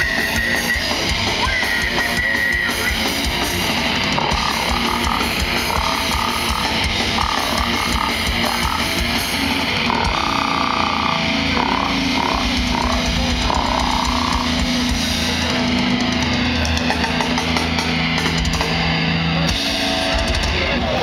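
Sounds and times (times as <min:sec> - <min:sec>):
distorted guitar: 0:00.0 - 0:21.0
drums: 0:00.0 - 0:21.0.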